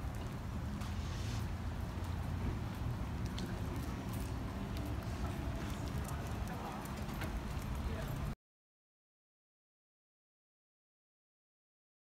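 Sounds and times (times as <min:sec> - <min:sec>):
footsteps on pavement: 0:00.0 - 0:08.4.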